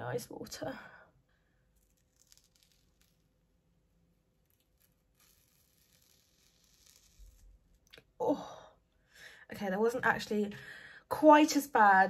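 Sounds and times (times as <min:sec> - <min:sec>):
soft tearing of peel-off mask: 0:01.4 - 0:08.1.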